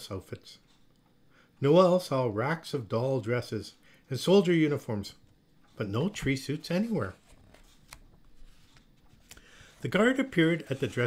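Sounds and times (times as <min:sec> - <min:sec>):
paper rustling: 0:05.9 - 0:11.0.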